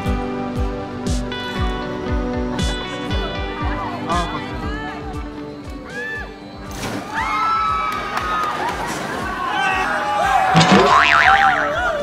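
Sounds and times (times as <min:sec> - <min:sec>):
music beat: 0:00.0 - 0:06.4, 0:10.6 - 0:12.0.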